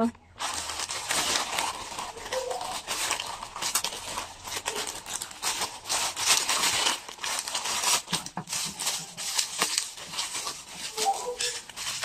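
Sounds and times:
plastic mailer bag crinkling: 0.3s - 12.0s.

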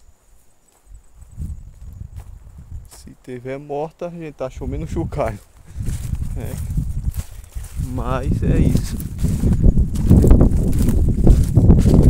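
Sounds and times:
wind on microphone: 0.9s - 3.2s, 4.4s - 12.0s.

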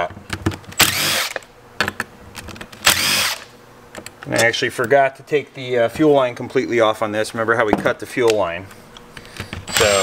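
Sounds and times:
cordless drill whining: 0.8s - 1.4s, 2.8s - 3.5s, 9.7s - 10.0s.

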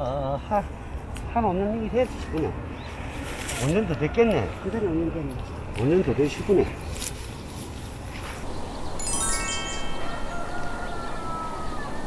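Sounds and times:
rising chime notes: 8.9s - 11.4s.

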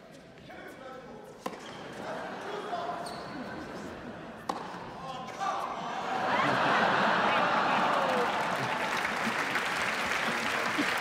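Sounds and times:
spectators chatting: 1.9s - 11.0s
tennis ball impact: 4.4s - 4.8s.

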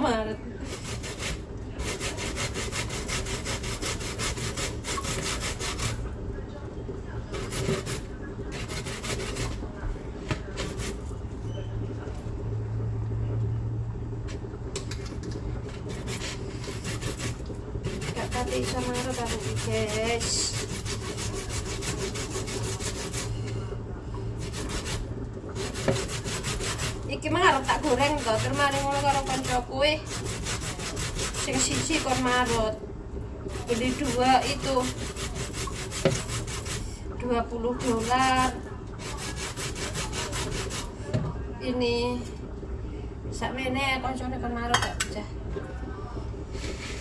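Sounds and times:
grater scraping a root: 0.7s - 6.0s, 7.3s - 9.6s, 10.6s - 11.1s, 15.7s - 23.4s, 24.4s - 32.7s, 33.5s - 36.8s, 37.8s - 40.9s.

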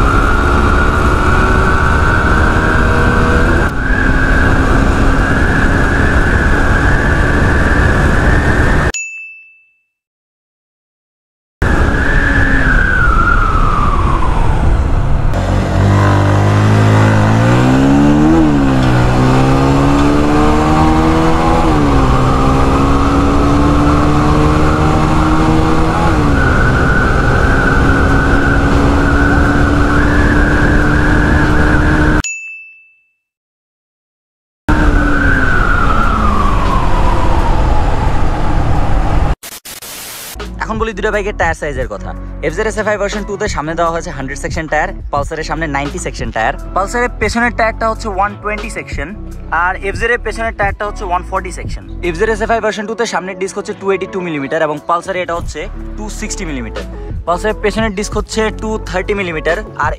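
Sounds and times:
motorcycle engine accelerating: 0.0s - 8.9s, 11.7s - 32.2s, 34.7s - 39.4s
wind on microphone: 3.1s - 8.9s
motorcycle engine slowing: 12.0s - 32.2s, 34.7s - 39.4s
glitch noise burst: 39.4s - 40.4s.

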